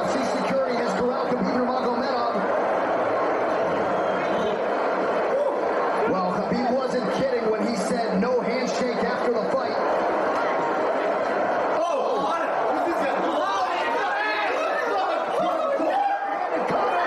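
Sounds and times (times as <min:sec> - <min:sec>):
people talking over one another: 0:00.0 - 0:17.0.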